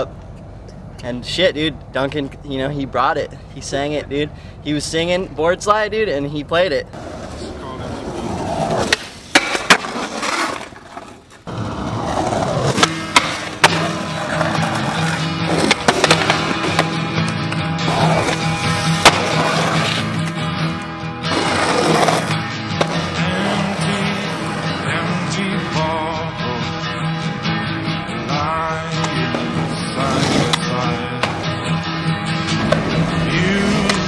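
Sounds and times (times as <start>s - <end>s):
skateboard clacks on concrete: 12.7s - 17.6s.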